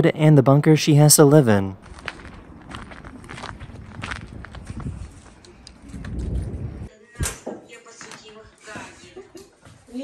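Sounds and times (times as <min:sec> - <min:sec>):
footsteps walking: 0:01.8 - 0:06.9, 0:07.8 - 0:10.0.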